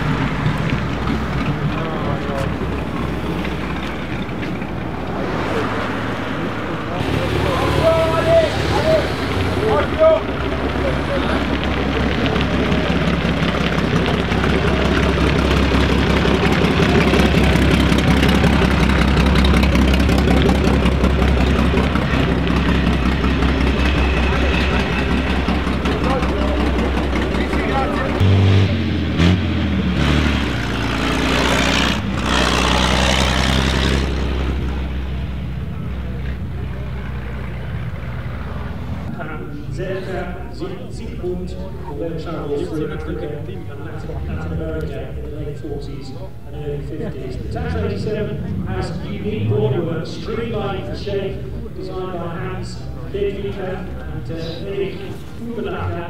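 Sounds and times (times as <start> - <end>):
car engine drone: 0.0 - 56.0.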